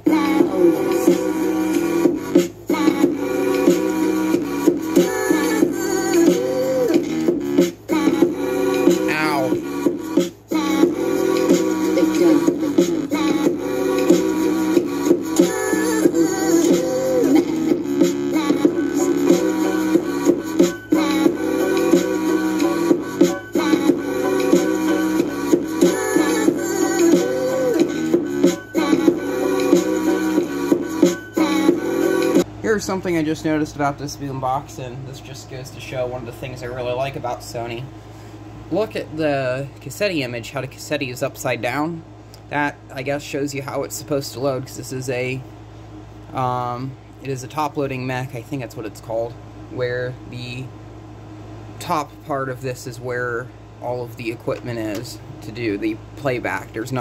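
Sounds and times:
music from boombox speakers: 0.0 - 32.5.

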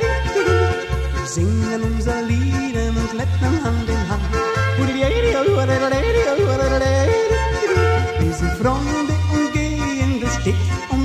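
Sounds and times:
bouncing bass beat: 0.0 - 11.0
person yodeling: 3.5 - 11.0.

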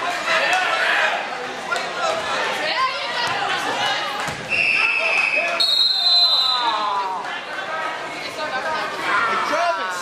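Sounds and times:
whistle tones: 4.5 - 6.7.

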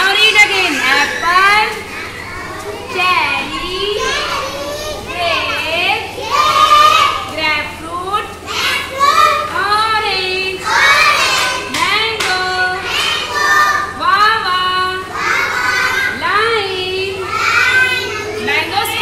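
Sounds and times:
woman and children singing: 5.0 - 17.6.

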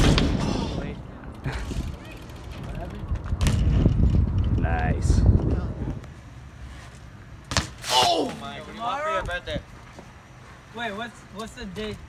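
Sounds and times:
bike landing hard on pavement: 0.0 - 0.9, 3.2 - 4.5, 7.4 - 8.5
voices: 7.8 - 12.0.

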